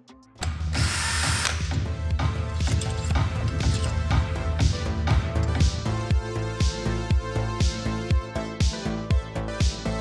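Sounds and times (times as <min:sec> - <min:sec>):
background music with steady beat: 0:00.0 - 0:10.0
cordless drill spinning bolts: 0:00.5 - 0:01.7.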